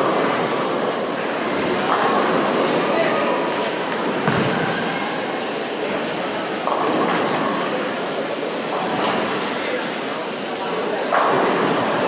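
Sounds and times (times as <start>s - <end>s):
bowling ball thud: 4.2s - 4.8s.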